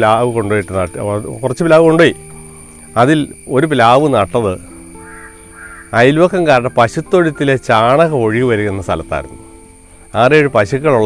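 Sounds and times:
man speaking: 6.0s - 9.3s.

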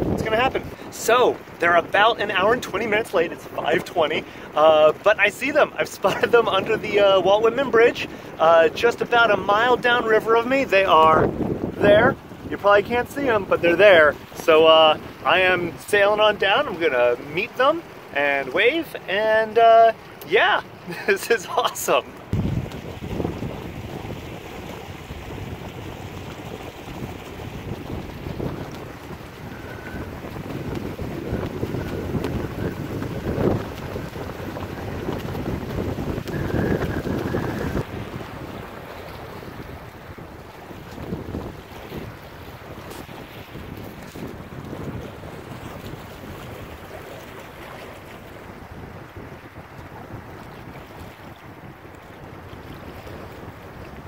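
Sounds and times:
water washing along hull: 0.0s - 54.0s
wind buffeting microphone: 0.0s - 54.0s.

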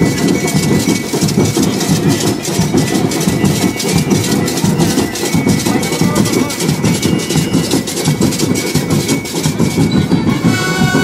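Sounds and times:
low drum beat: 0.0s - 11.0s
metal shakers: 0.0s - 11.0s.

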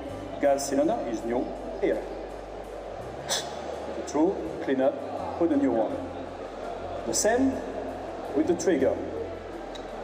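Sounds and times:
background music: 0.0s - 10.0s
hum of a large hall: 0.0s - 10.0s
speech: 0.4s - 2.1s, 4.0s - 9.3s.

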